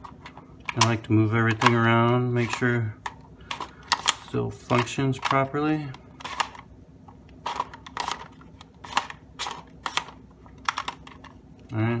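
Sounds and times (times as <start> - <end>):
plastic parts clicking: 0.0 - 6.7, 7.4 - 11.4.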